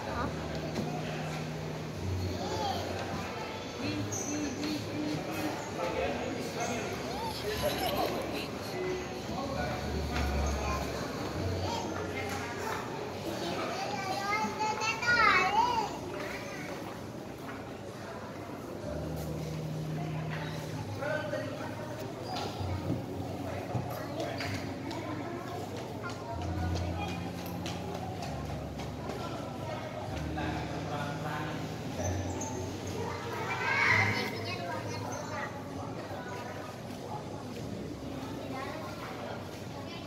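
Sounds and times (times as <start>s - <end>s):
people talking: 0.0s - 40.0s.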